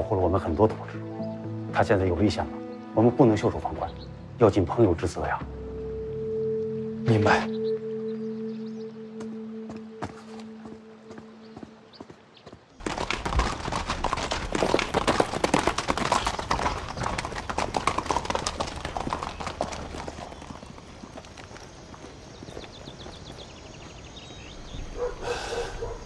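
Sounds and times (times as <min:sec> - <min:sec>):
hooves clip-clopping on dirt: 0:09.1 - 0:25.1.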